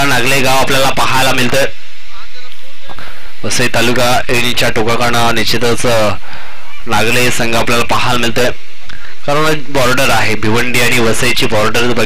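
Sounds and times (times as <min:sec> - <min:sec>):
man commentating: 0:00.0 - 0:06.2, 0:06.8 - 0:08.6, 0:09.2 - 0:12.0.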